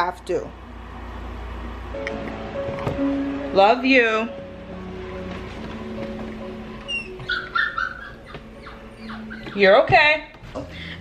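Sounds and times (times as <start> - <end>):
puppy whining: 6.8 - 9.9
puppy squeak: 6.8 - 10.0.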